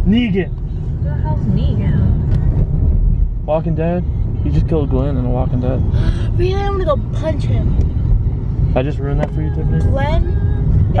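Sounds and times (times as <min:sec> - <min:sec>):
car driving rumble inside cabin: 0:00.0 - 0:11.0.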